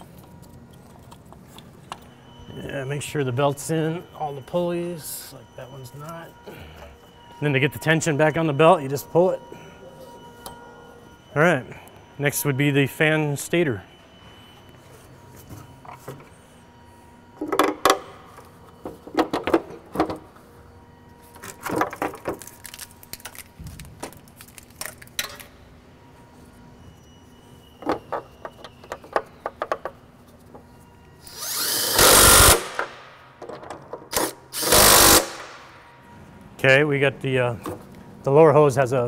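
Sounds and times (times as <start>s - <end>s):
cordless drill driving screw: 31.3s - 32.8s, 34.1s - 35.4s.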